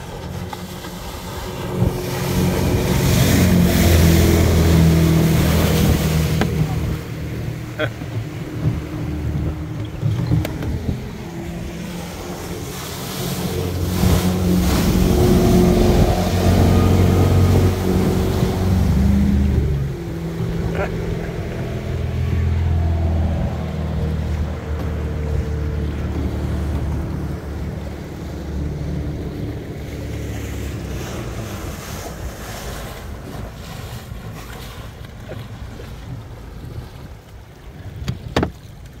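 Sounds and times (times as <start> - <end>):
motorboat engine passing: 0.0 - 39.0
water rushing along hull: 0.0 - 39.0
wind: 0.0 - 39.0.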